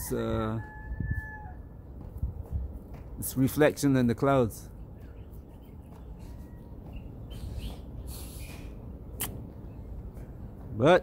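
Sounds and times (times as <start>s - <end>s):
rooster crowing: 0.0s - 1.8s.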